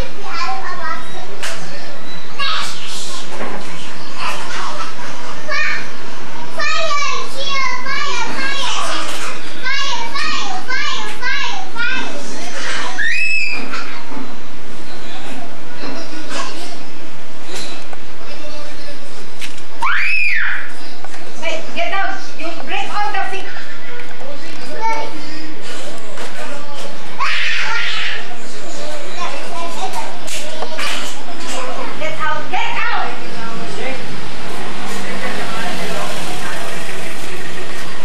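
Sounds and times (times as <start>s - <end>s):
young child talking: 0.0s - 1.4s, 2.3s - 3.4s, 4.2s - 13.0s, 24.3s - 25.4s, 27.3s - 33.2s
children chattering and playing: 0.0s - 38.0s.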